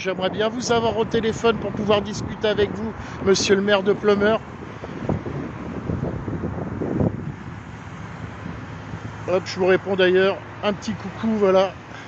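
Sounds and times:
wind buffeting microphone: 0:00.0 - 0:11.9
road traffic: 0:00.0 - 0:12.0.

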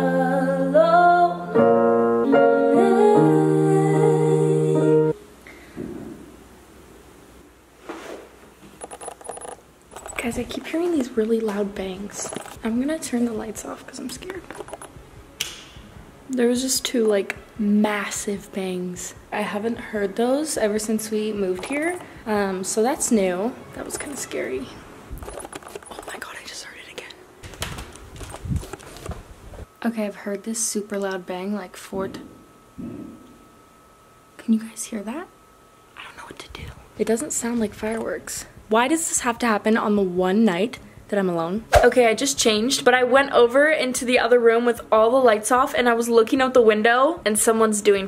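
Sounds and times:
hushed whispering: 0:25.9 - 0:27.2.

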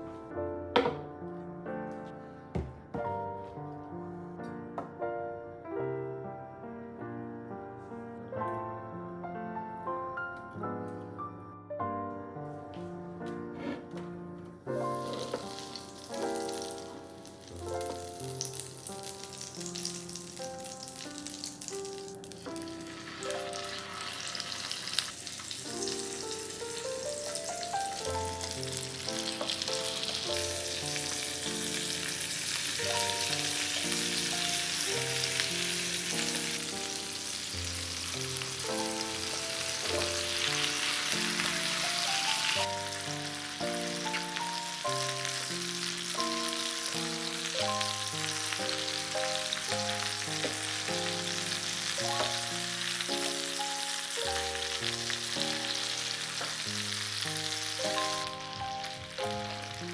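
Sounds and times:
melodic background music: 0:08.2 - 0:24.2, 0:57.7 - 0:59.9
chicken sizzling in oil: 0:14.9 - 0:59.9.

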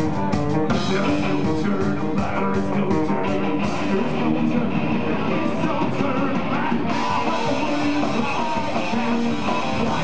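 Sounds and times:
acoustic drums: 0:00.0 - 0:10.0
distorted electric guitars: 0:00.0 - 0:10.0
person singing: 0:00.6 - 0:10.0.

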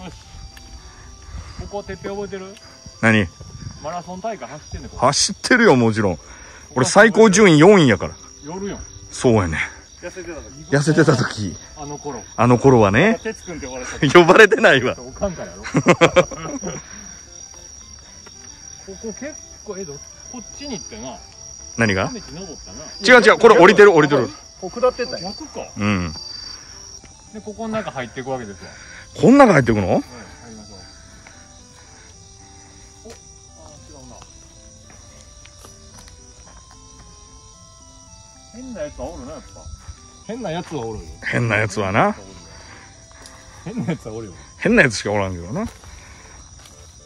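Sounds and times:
insects chirping: 0:00.0 - 0:47.0
soft background music: 0:00.0 - 0:47.0.

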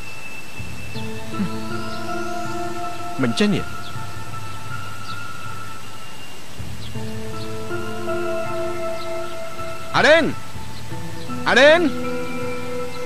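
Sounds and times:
steady hiss: 0:00.0 - 0:13.0
sustained held chords: 0:00.0 - 0:13.0.

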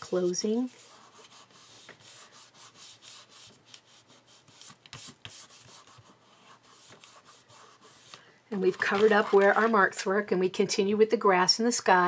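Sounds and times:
paper rubbing and rustling: 0:00.2 - 0:09.9.

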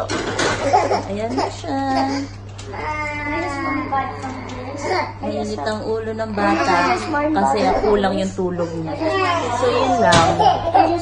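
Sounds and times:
toddler crying: 0:00.6 - 0:05.4, 0:06.2 - 0:08.2, 0:08.9 - 0:11.0.

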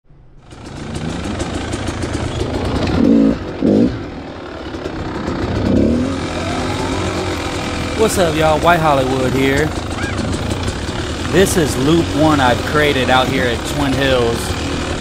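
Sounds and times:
dirt bike engine running: 0:00.4 - 0:15.0.

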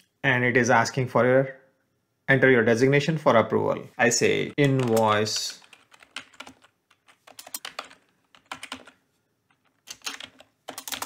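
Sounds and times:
computer keyboard typing: 0:04.6 - 0:11.0.

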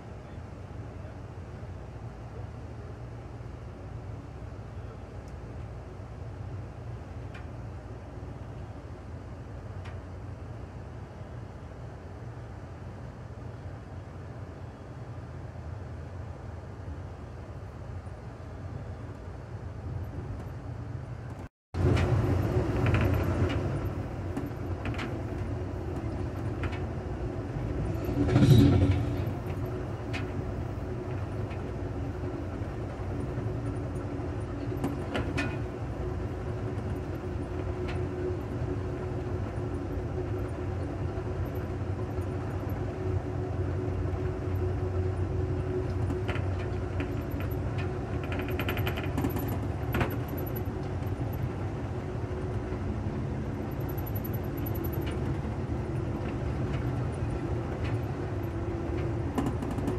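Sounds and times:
train rumbling: 0:00.0 - 0:59.9.

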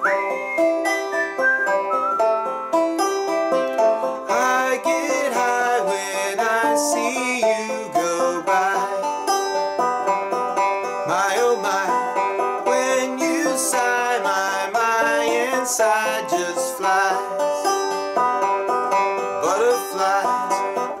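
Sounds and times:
banjo picked and strummed: 0:00.0 - 0:21.0
man singing: 0:04.2 - 0:09.2, 0:11.0 - 0:17.6, 0:19.3 - 0:21.0.

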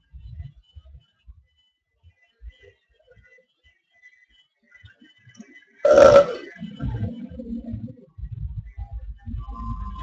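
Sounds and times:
person burping: 0:05.9 - 0:06.5.

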